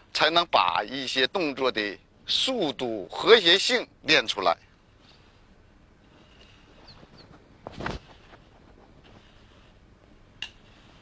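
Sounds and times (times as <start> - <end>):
faint bird calls: 6.2 - 7.4.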